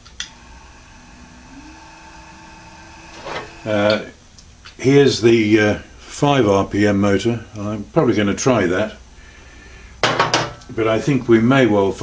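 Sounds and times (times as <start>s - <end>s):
click: 0.0s - 0.4s
small motor humming: 0.1s - 3.9s.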